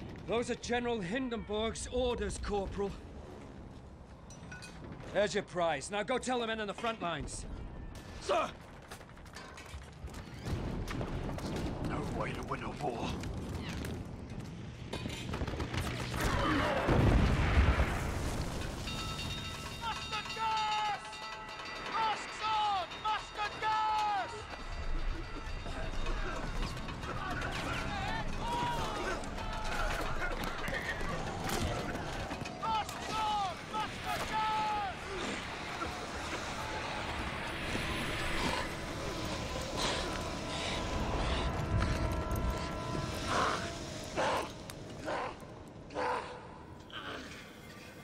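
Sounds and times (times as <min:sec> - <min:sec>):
explosions: 0:15.1 - 0:19.1
film music score: 0:18.8 - 0:48.0
men shouting: 0:26.1 - 0:46.7.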